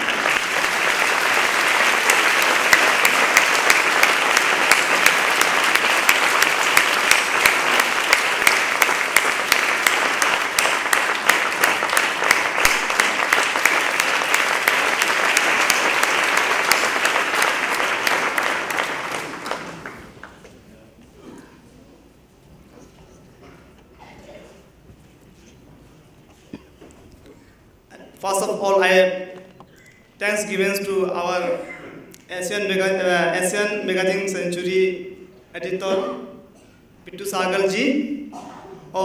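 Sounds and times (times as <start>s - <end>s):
audience applauding: 0.0s - 20.5s.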